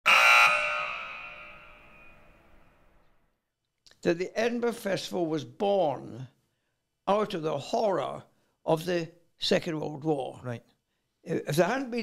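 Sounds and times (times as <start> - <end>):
electronic buzzer tone: 0.0 - 2.5.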